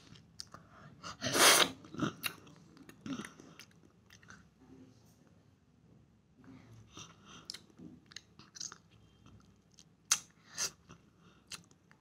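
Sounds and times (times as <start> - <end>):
child chewing and sucking: 1.2 - 4.5, 6.9 - 12.0.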